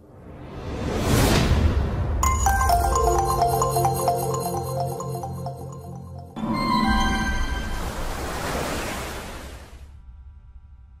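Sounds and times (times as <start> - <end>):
ringing held tones: 2.2 - 7.7.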